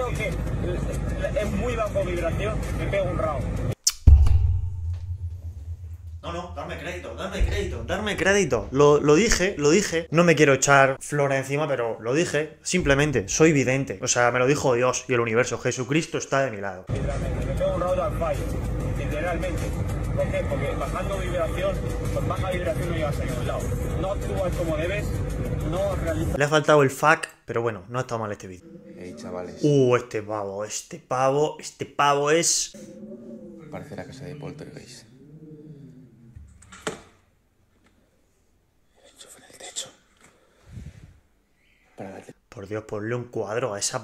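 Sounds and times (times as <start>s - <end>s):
man talking: 6.2s - 18.4s, 25.7s - 32.8s, 33.6s - 35.1s
person whispering: 28.6s - 29.8s, 39.0s - 40.0s.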